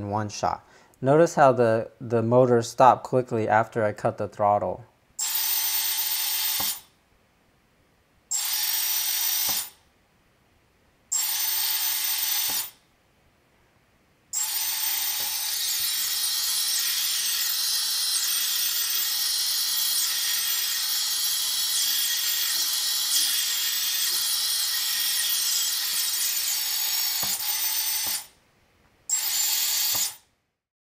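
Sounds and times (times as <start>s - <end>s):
drone motors whining: 14.4s - 28.2s.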